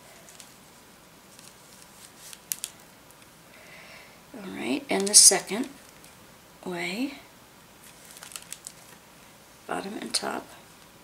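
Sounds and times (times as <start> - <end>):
needle rustling through canvas: 0.0 - 2.8.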